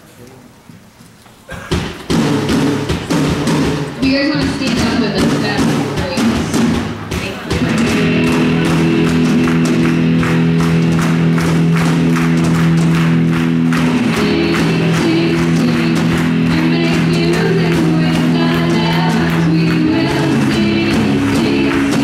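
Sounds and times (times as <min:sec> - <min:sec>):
drum kit beat: 0:01.5 - 0:22.0
held chords: 0:02.0 - 0:22.0
electric guitar: 0:07.5 - 0:22.0
people singing: 0:14.0 - 0:22.0.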